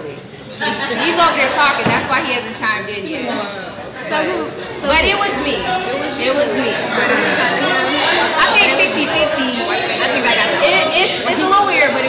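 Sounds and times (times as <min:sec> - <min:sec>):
women chattering: 0:00.6 - 0:12.0.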